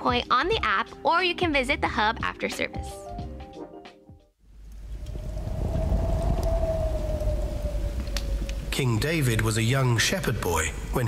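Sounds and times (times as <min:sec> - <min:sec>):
deep rumble: 0:04.7 - 0:09.6.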